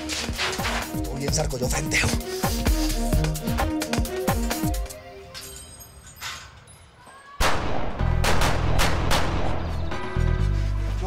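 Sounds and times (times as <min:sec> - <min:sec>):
low music bed: 0:00.0 - 0:05.4, 0:09.3 - 0:11.0
gunshots: 0:07.4 - 0:09.9.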